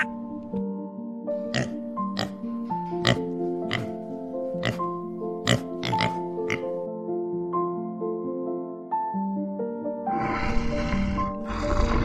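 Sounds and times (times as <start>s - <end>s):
background music of sustained chords: 0.0s - 12.0s
pigs grunting: 1.5s - 2.4s, 3.0s - 4.0s, 4.6s - 6.7s, 10.1s - 12.0s.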